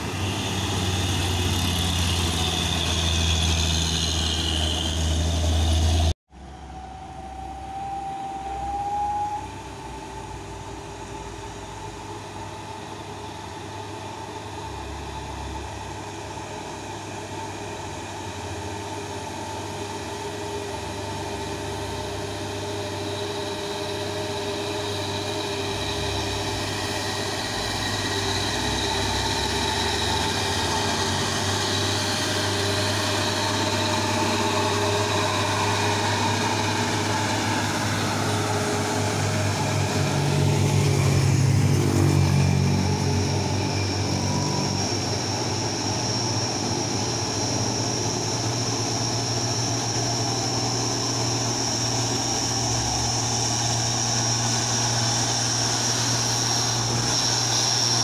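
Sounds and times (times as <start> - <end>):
truck diesel engine labouring uphill: 0.0 - 58.0.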